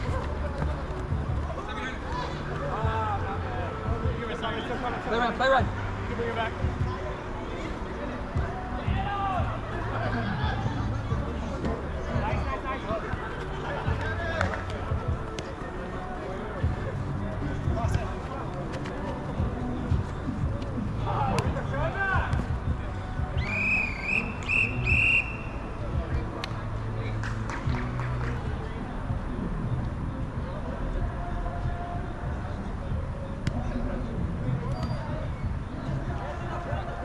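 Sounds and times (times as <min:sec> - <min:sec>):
referee's whistle blasts: 0:23.4 - 0:25.6.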